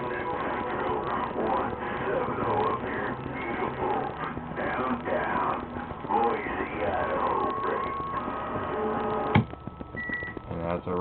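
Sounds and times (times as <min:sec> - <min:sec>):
steady whistling tones: 0:09.5 - 0:11.0.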